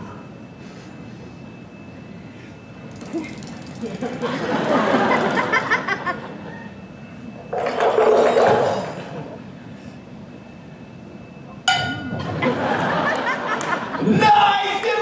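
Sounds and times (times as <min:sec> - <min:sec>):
sharp ringing metal strike: 0:11.7 - 0:12.3.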